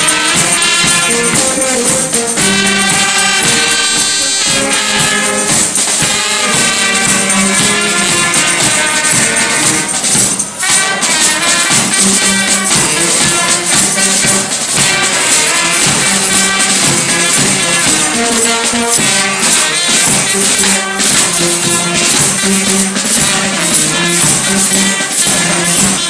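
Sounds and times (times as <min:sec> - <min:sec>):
bass drum and snare beat: 0:00.0 - 0:26.0
brass band playing: 0:00.0 - 0:26.0
tambourine shaking: 0:00.0 - 0:26.0.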